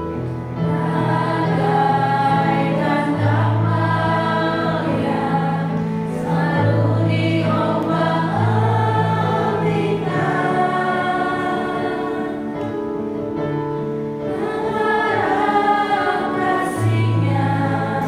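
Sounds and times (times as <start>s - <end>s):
group singing a hymn: 0.6s - 13.6s, 14.2s - 18.0s.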